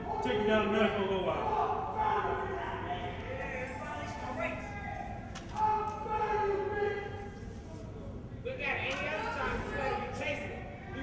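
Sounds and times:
unintelligible voices in a hall: 0.0s - 11.0s.

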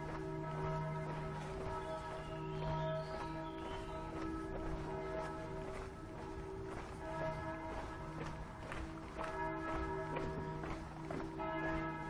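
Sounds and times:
church bells pealing: 0.0s - 12.0s
footsteps on pavement: 0.0s - 12.0s.

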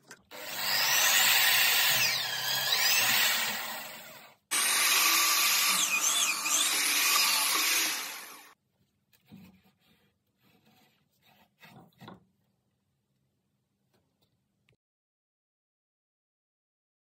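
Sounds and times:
electric drill boring into wood: 0.3s - 8.6s.

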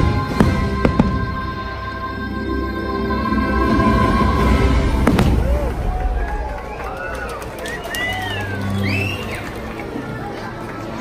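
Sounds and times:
fireworks booming: 0.0s - 1.5s, 4.9s - 5.7s.

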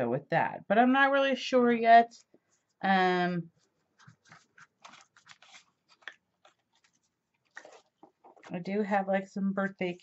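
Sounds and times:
paper rustling and crinkling: 3.6s - 8.8s.

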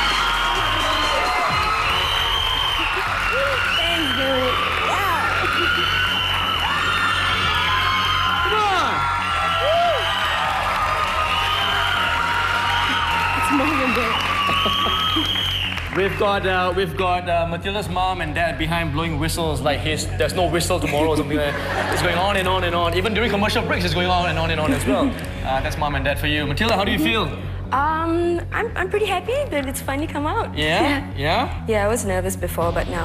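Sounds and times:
audience cheering and applauding: 0.0s - 17.1s
toy whistles blowing: 14.1s - 15.8s.

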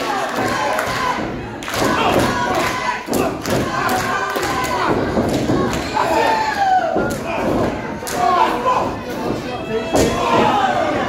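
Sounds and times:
crowd shouting: 0.0s - 11.0s.

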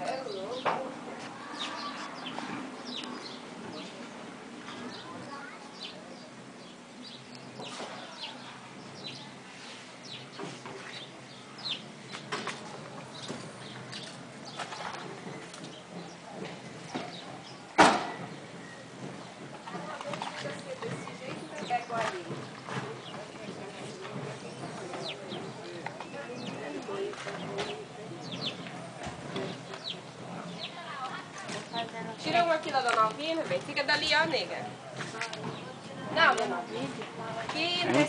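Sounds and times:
faint distant voices: 0.0s - 38.0s
sharp knock: 17.8s - 18.3s
bird chirps and calls: 24.4s - 34.5s.

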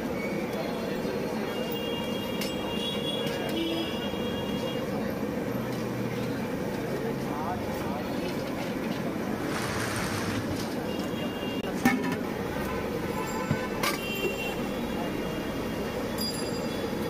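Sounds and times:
steady traffic: 0.0s - 17.0s
car horn toot: 12.7s - 14.8s.

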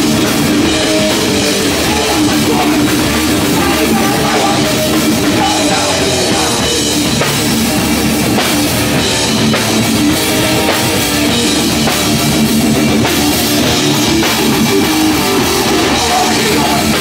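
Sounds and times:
punk band playing loudly: 0.0s - 17.0s.

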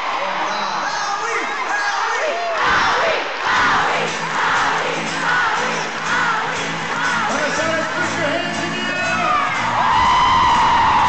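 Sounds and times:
crowd screaming and cheering: 0.0s - 11.0s.

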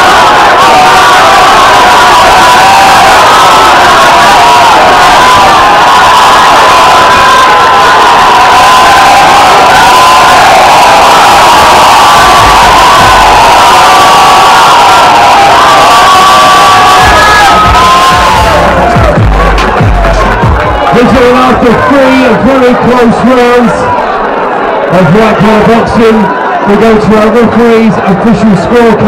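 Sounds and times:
crowd cheering and shouting: 0.0s - 29.0s.

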